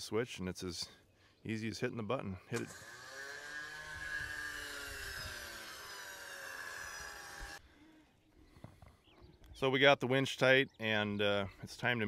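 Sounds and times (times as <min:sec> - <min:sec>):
electric winch motor whining: 0:02.6 - 0:07.6.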